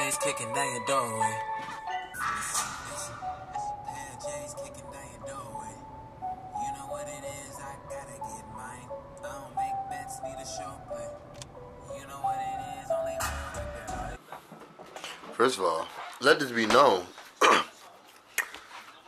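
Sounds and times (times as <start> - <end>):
song with singing voice: 0.0 - 14.2.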